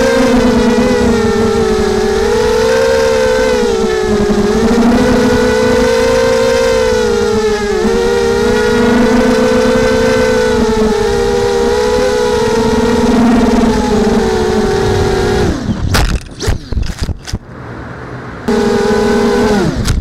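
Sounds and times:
quadcopter motors whining: 0.0 - 17.2, 18.5 - 20.0.

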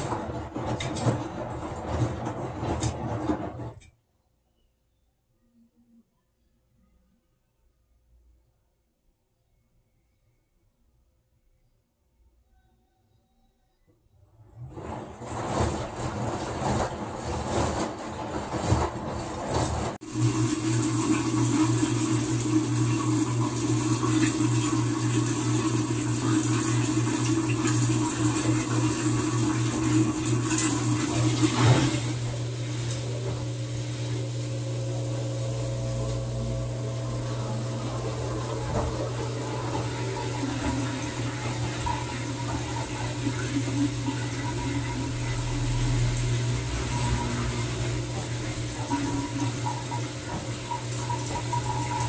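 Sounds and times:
water rushing and sloshing in drum: 0.0 - 3.5, 14.8 - 52.0
washing machine hum: 0.0 - 4.2, 13.9 - 52.0.

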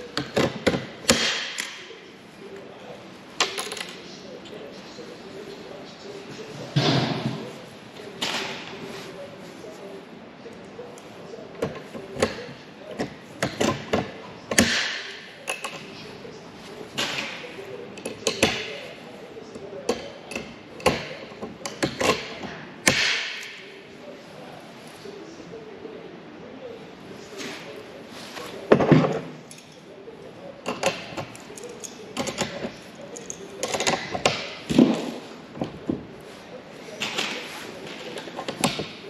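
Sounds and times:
parts and tools clinking: 3.4 - 4.2, 10.6 - 16.2, 28.4 - 29.9.

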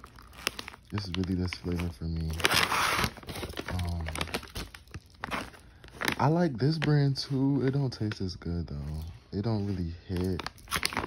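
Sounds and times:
plastic pouch crinkling: 0.0 - 11.0.

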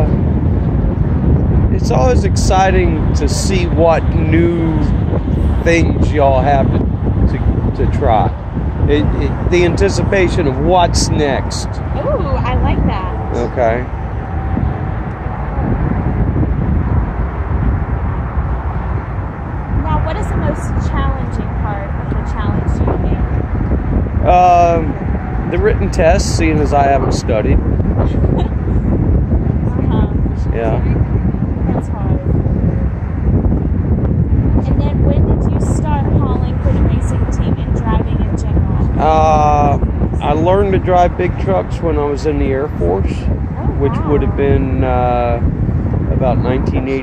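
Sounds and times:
low outdoor rumble: 0.0 - 47.0
voices: 1.7 - 15.5, 19.8 - 23.5, 24.2 - 28.9, 29.6 - 31.0, 31.6 - 32.4, 34.6 - 45.4, 46.1 - 47.0.

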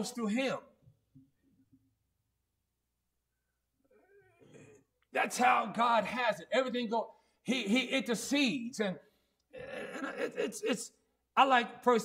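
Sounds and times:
faint pitch-bending cry: 3.8 - 4.7.

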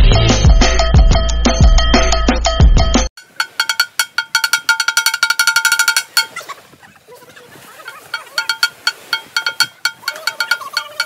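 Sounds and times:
metal pot ringing knocks: 3.2 - 6.4, 7.9 - 11.0.

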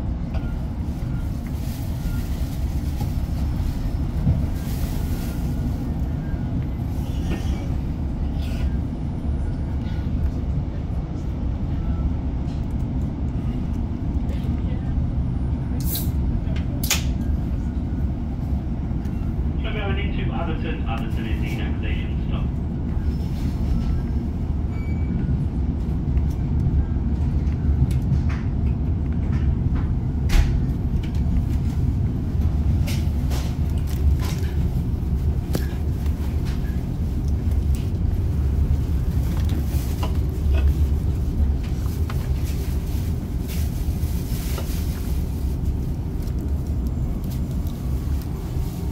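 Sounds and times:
train wheels on rails: 0.0 - 11.7, 20.8 - 48.9
low rumble of diesel engine: 0.0 - 48.9.

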